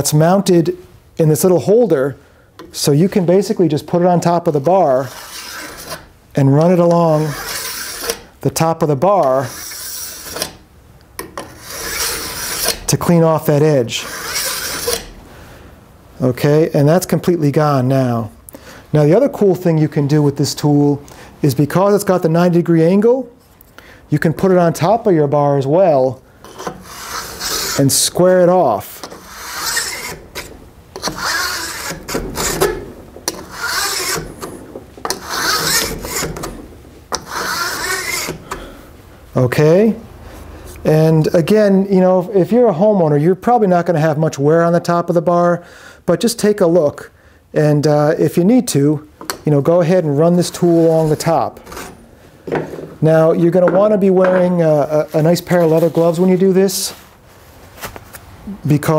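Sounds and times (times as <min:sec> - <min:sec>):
file scraping metal rail: 0:04.2 - 0:08.3, 0:09.0 - 0:10.6, 0:11.2 - 0:12.9, 0:13.9 - 0:15.2, 0:26.4 - 0:38.8, 0:50.2 - 0:52.9.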